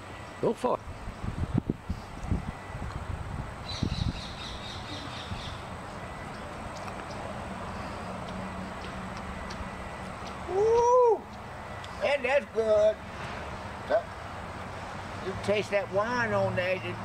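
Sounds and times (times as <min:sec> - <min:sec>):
outdoor background hiss: 0:00.0 - 0:17.0
bird chattering: 0:03.6 - 0:05.7.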